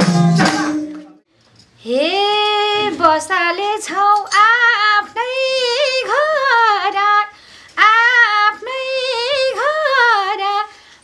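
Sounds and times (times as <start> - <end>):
woman singing unaccompanied: 1.8 - 10.8.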